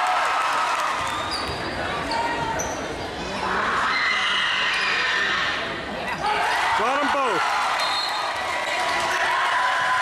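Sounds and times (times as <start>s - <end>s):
crowd chattering and shouting: 0.0s - 10.0s
sneakers squeaking on hardwood: 1.1s - 2.9s.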